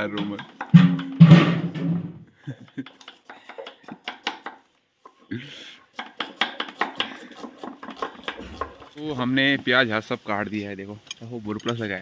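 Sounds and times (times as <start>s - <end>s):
knives slicing onions on wood: 2.9s - 4.7s, 5.9s - 9.0s.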